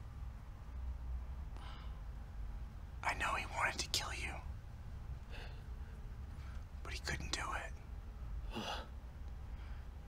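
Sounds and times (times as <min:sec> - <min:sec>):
low steady hum: 0:00.0 - 0:10.0
person whispering: 0:03.0 - 0:04.5, 0:06.8 - 0:07.8.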